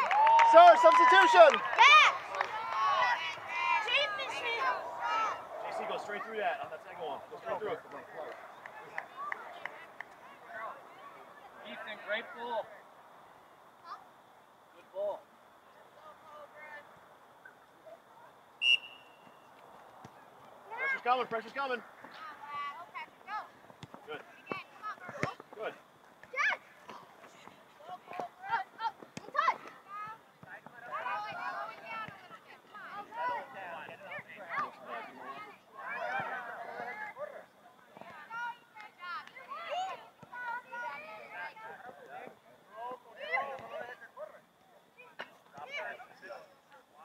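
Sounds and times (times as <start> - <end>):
people shouting and calling: 0.0 - 9.6.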